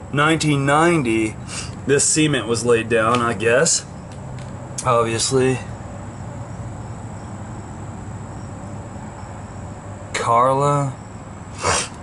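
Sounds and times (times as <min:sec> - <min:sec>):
insects trilling: 0:00.0 - 0:12.0
low background rumble: 0:00.0 - 0:12.0.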